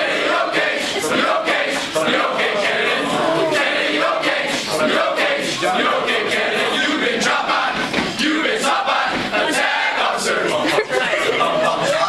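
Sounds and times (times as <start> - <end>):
group of men chanting and shouting: 0.0 - 12.0.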